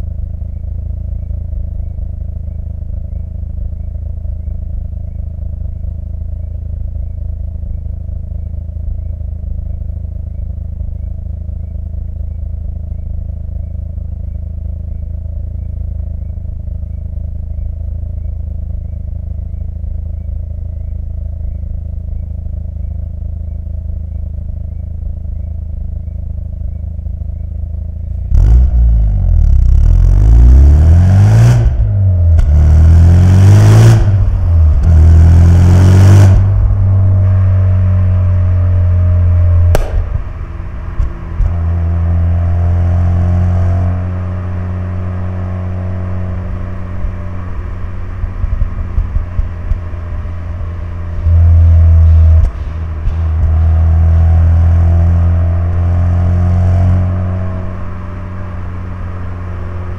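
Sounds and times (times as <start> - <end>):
rotary engine accelerating: 28.1 - 59.9.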